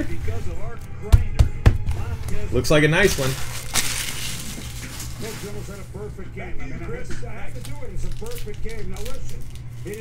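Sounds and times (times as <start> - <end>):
faint television voice: 4.5 - 10.0.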